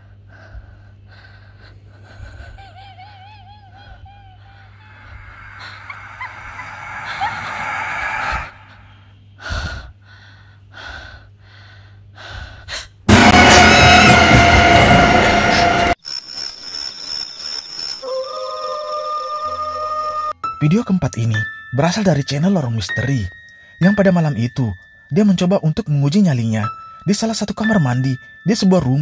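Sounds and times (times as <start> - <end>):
woman gasping: 0.6 - 13.0
loud screeching noise: 4.7 - 9.1, 13.1 - 16.0.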